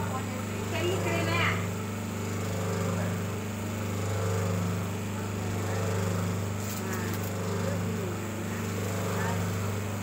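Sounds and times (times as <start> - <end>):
machine motor humming: 0.0 - 10.0.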